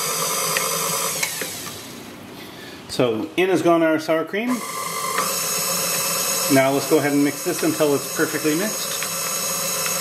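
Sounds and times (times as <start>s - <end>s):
stand mixer motor whine: 0.0s - 1.9s, 4.5s - 10.0s.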